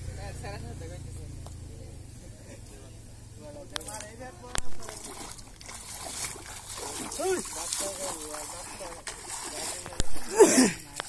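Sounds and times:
water splashing and sloshing: 3.8s - 11.0s.

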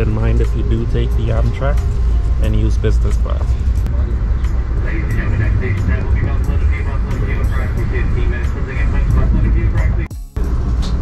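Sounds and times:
indistinct voices: 0.0s - 10.5s
train rolling on track: 0.0s - 11.0s.

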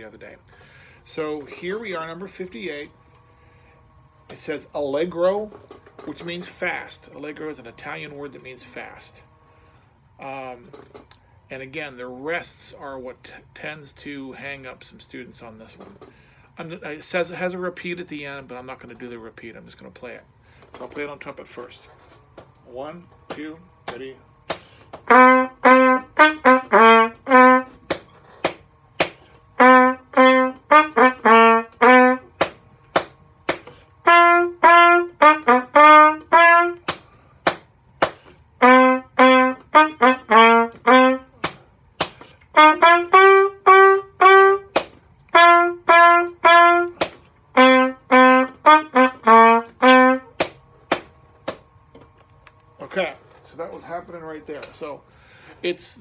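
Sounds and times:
trumpet playing short notes: 25.0s - 28.0s, 29.5s - 32.5s, 33.7s - 36.9s, 38.6s - 41.4s, 42.5s - 50.4s.

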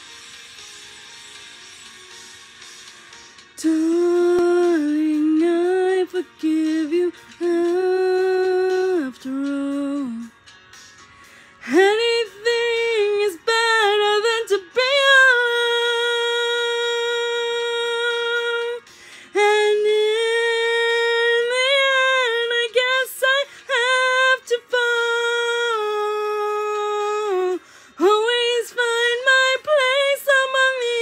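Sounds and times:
woman singing unaccompanied: 3.6s - 10.3s, 11.6s - 31.0s.

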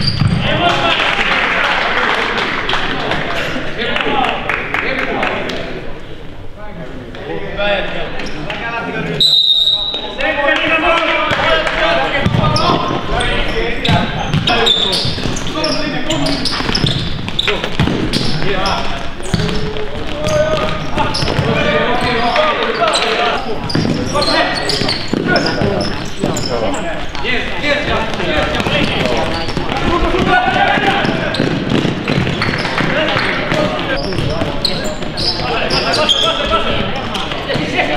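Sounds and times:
players shouting: 18.2s - 37.9s.

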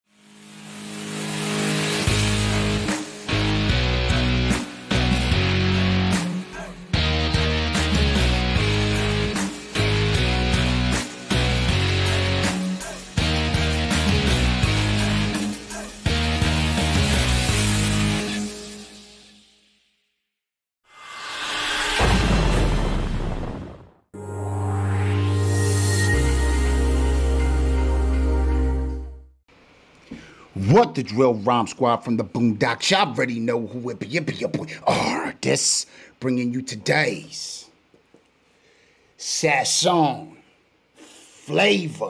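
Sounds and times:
rising whoosh effect: 20.9s - 27.5s
held low chord: 24.2s - 29.3s.

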